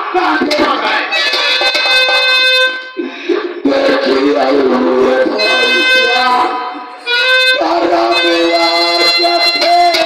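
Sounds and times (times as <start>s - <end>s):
band playing music: 0.4s - 10.0s
reedy keyboard note: 4.9s - 10.0s.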